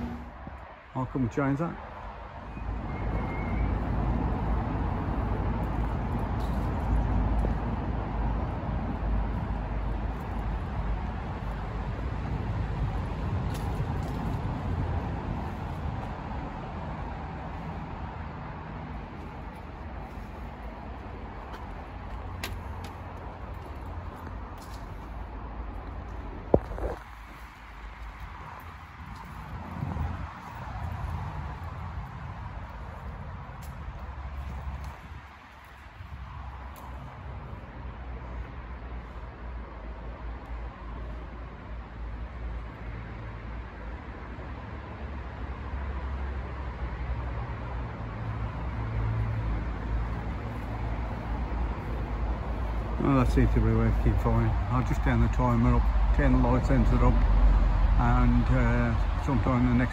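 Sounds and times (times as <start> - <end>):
outdoor background rumble: 0.0 - 1.8, 2.6 - 59.9.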